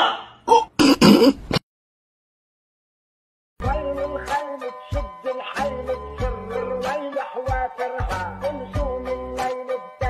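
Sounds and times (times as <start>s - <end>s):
person clearing throat: 0.4s - 1.6s.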